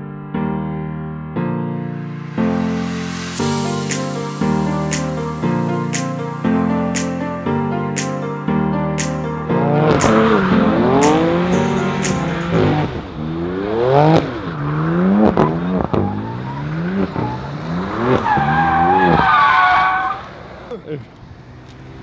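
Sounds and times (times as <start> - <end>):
car engine revving: 9.6 - 22.0.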